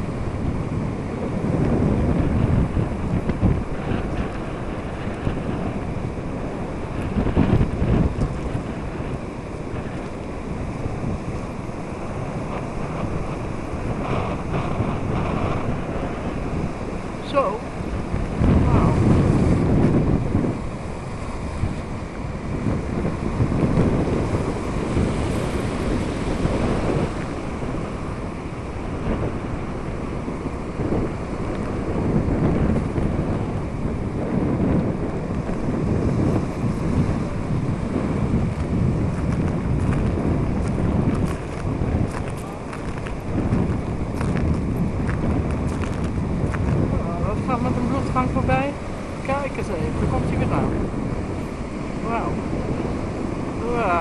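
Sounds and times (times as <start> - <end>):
sea surf: 0.0 - 54.0
wind buffeting microphone: 0.0 - 54.0.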